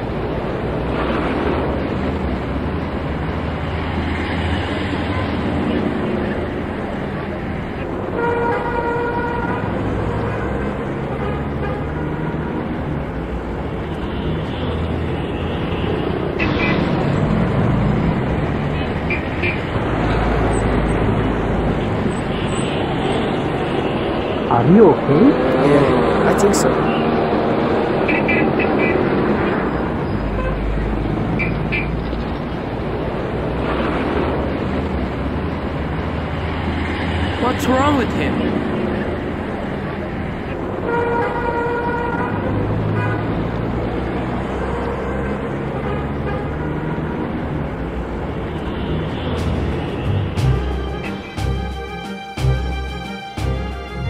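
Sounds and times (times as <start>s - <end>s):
road traffic rumble: 0.0s - 54.0s
vehicle horn: 8.2s - 12.7s, 48.7s - 54.0s
passing vehicle rumble: 15.9s - 23.6s, 42.2s - 54.0s.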